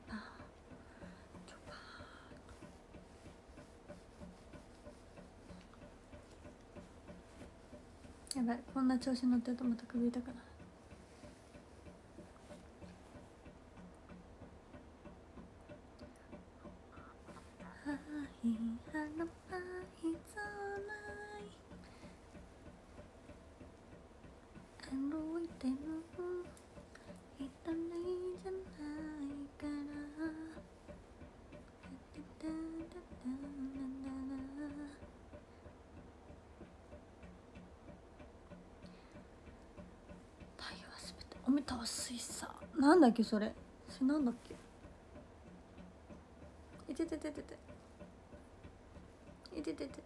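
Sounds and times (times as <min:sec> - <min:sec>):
faint clicks: 0:00.0 - 0:50.0
faint light ticks: 0:00.0 - 0:50.0
low steady hum: 0:00.0 - 0:50.0
woman speaking: 0:08.3 - 0:10.4, 0:40.6 - 0:44.5, 0:46.8 - 0:47.6, 0:49.5 - 0:50.0.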